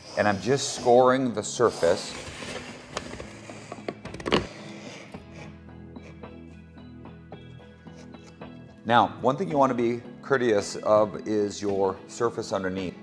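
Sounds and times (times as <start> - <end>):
scoring tool scratching laminate: 0.0 - 6.2
quiet background music: 0.0 - 13.0.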